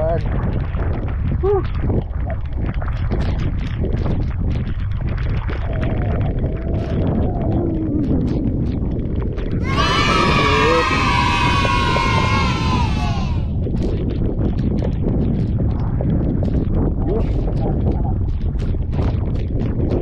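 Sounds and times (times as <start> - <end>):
wind buffeting microphone: 0.0 - 20.0
high-pitched drawn-out cry: 9.6 - 13.5.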